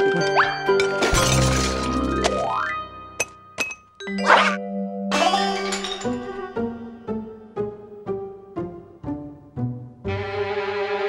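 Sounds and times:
music: 0:00.0 - 0:11.0
cartoon sound effects: 0:04.2 - 0:05.6.

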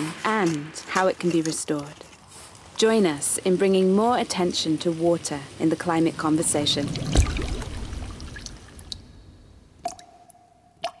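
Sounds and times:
water drops plinking: 0:09.8 - 0:11.0.

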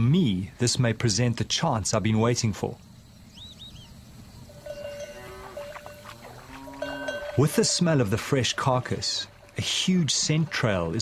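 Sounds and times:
faint bird chirps: 0:02.8 - 0:06.7
cattle bells clanking: 0:04.5 - 0:11.0.

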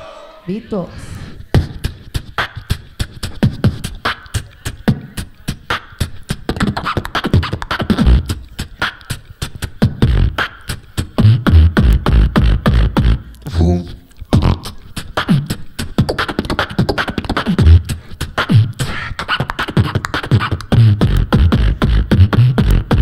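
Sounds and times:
beatboxing clicks and snares: 0:01.1 - 0:23.0
deep bass pulses: 0:11.2 - 0:14.6, 0:20.8 - 0:23.0.

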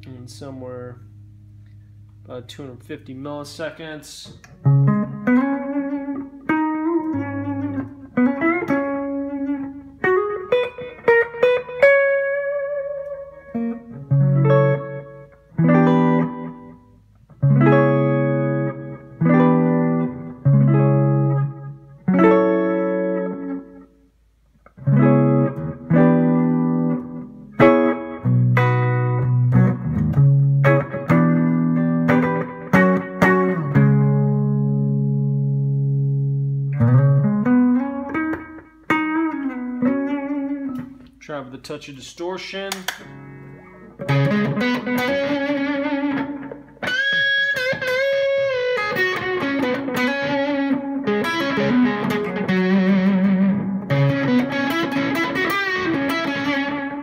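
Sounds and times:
electric guitar strummed chords: 0:00.0 - 0:23.9, 0:24.7 - 0:41.2, 0:42.8 - 0:57.0.

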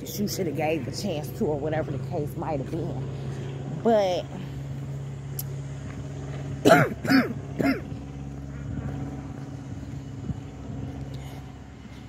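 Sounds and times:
low outdoor background hum: 0:00.0 - 0:12.0
woman clearing her throat: 0:06.6 - 0:07.9.

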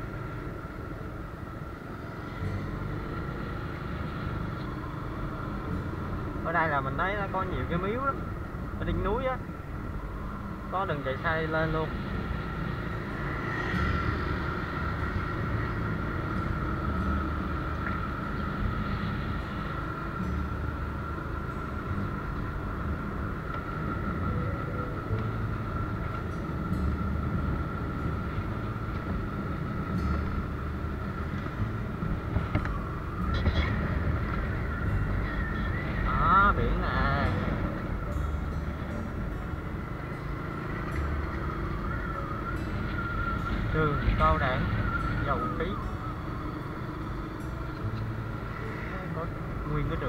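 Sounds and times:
motor scooter engine whine: 0:00.0 - 0:50.0.

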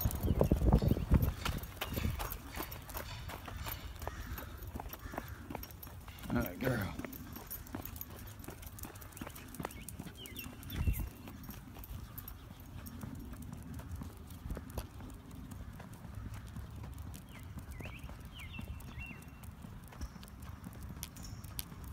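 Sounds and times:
dog's clicking steps: 0:00.0 - 0:21.9
footsteps on concrete: 0:00.0 - 0:21.9.

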